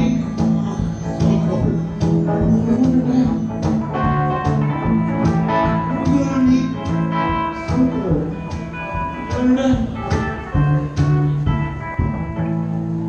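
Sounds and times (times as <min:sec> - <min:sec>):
blues guitar: 0:00.0 - 0:13.0.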